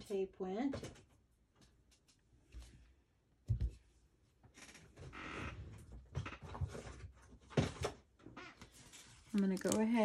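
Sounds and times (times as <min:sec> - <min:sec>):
rustling of craft supplies: 0:05.7 - 0:10.0.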